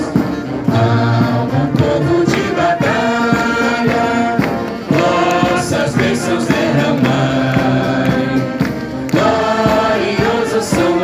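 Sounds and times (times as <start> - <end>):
choir singing a hymn: 0.0 - 11.0
instrumental accompaniment: 0.0 - 11.0.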